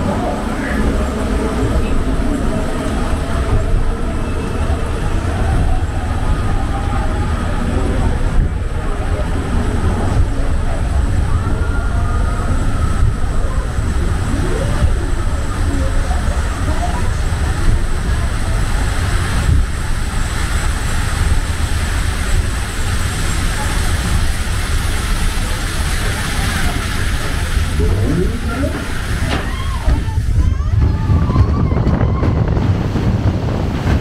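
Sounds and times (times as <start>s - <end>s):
conveyor chain rumble: 0.0s - 34.0s
faint voices: 0.0s - 34.0s
running water: 0.0s - 34.0s.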